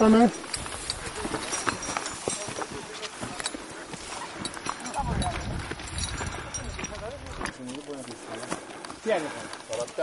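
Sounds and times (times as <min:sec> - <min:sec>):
footsteps crunching on stony ground: 0:00.0 - 0:10.0.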